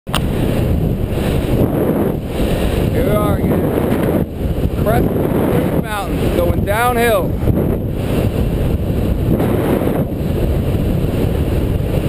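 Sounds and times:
heavy wind over microphone: 0:00.1 - 0:12.0.

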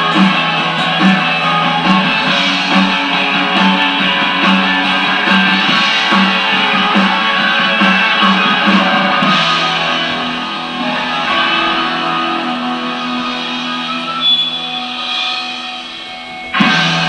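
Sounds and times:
electric guitar chords: 0:00.0 - 0:17.0.

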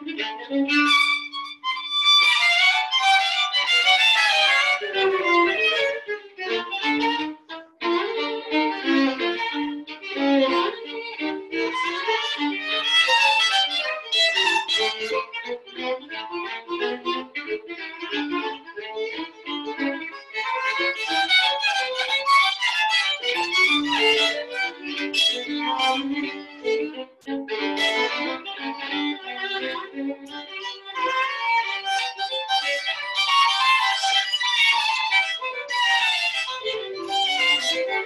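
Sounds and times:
violin duet: 0:00.0 - 0:38.0.

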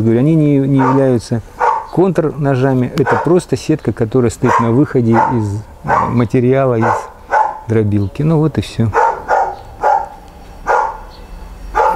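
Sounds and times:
dog barking: 0:00.8 - 0:02.0, 0:03.0 - 0:03.4, 0:04.4 - 0:07.7, 0:08.9 - 0:11.1.

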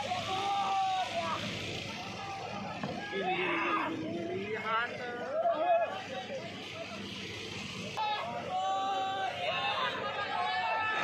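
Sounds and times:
men shouting over water: 0:00.0 - 0:04.1, 0:08.0 - 0:11.0.

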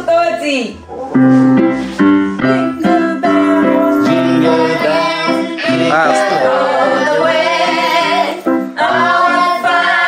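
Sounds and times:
digital piano playing held chords: 0:00.9 - 0:10.0.

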